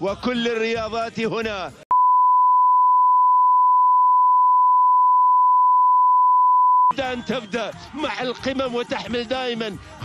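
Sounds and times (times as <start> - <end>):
steady reference tone beep: 1.9 - 6.9.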